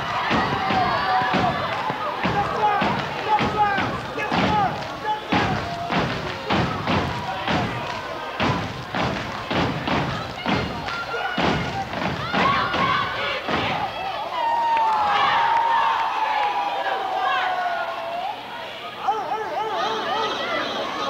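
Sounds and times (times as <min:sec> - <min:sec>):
feet stomping on floor: 0:00.0 - 0:13.9
hands clapping: 0:00.0 - 0:13.9
voices shouting: 0:00.0 - 0:21.0.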